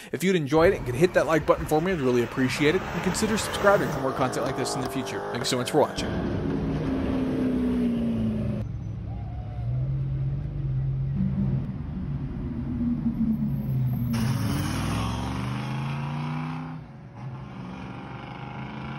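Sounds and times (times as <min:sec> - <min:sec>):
car engines revving: 0:00.6 - 0:18.9.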